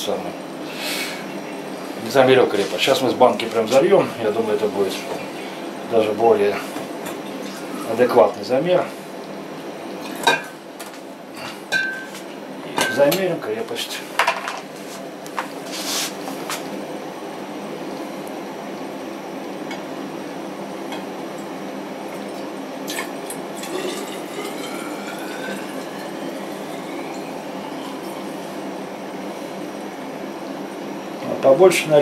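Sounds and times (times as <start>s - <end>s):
steady hum: 0.0s - 32.0s
liquid pouring into glass: 22.0s - 30.9s.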